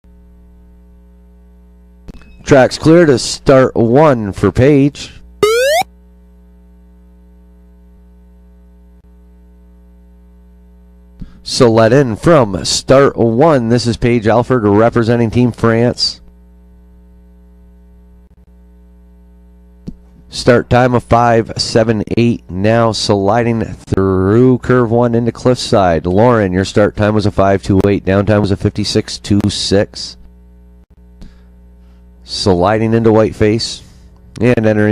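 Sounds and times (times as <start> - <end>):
electrical mains hum: 0.1 - 34.9.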